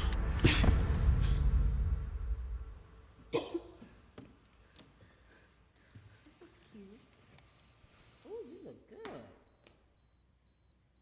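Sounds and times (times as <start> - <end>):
woman's cough-like vocal outburst: 3.3 - 3.9.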